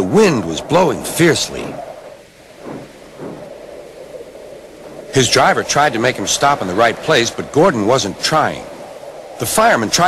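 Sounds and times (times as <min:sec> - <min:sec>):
strong wind blowing: 0:00.0 - 0:10.0.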